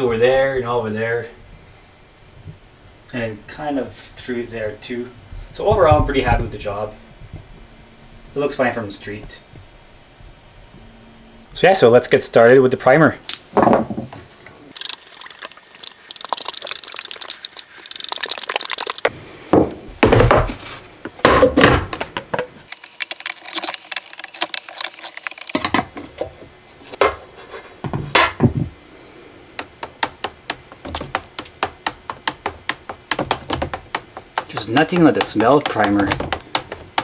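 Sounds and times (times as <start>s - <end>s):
stir stick ticking in can: 14.8s - 19.1s, 30.4s - 37.0s.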